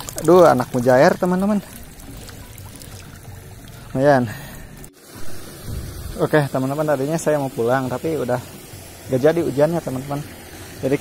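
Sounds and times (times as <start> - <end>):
water trickling in a ditch: 0.0 - 11.0.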